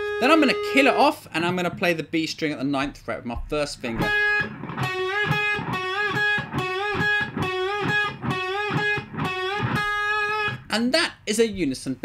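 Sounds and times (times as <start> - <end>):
electric guitar string bends: 0.0 - 1.9, 3.3 - 10.7.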